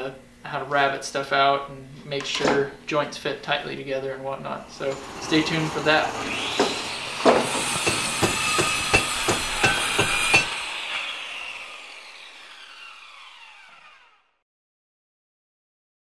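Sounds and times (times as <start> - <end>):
sharp knocks: 6.5 - 10.6.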